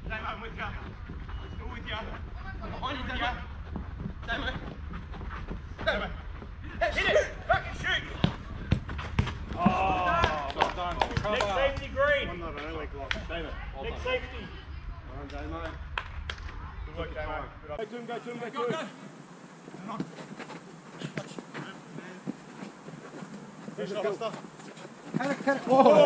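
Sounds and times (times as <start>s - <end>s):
football being kicked: 8.0s - 10.4s
footballers shouting: 9.4s - 12.1s, 23.8s - 26.0s.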